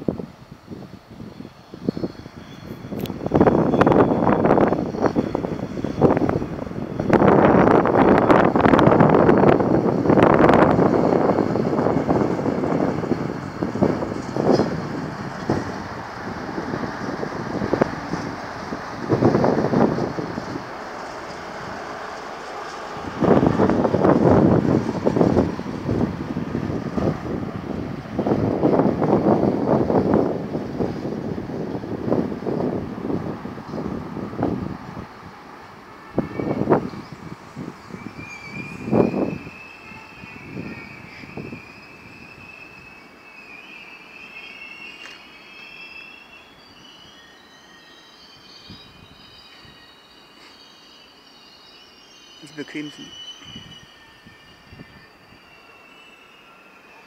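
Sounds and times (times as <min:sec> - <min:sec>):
high-pitched brake squeal: 0:00.8 - 0:15.7, 0:36.0 - 0:57.0
train wheels clattering: 0:10.6 - 0:25.8.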